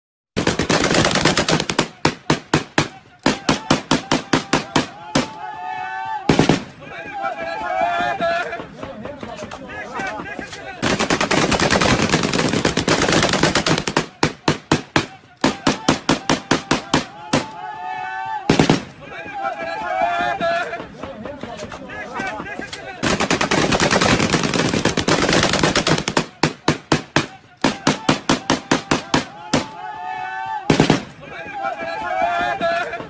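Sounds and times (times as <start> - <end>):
automatic gunfire bursts: 0.4 - 1.9, 10.8 - 14.2, 23.0 - 26.3
voices calling out: 1.7 - 11.3, 13.8 - 23.4, 26.1 - 33.0.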